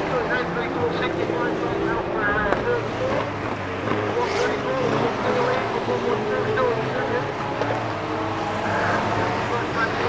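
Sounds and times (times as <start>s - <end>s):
race car engines accelerating: 0.0s - 10.0s.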